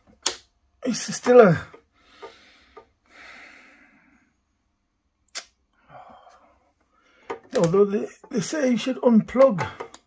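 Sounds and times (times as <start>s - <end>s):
sharp click: 5.3s - 5.6s.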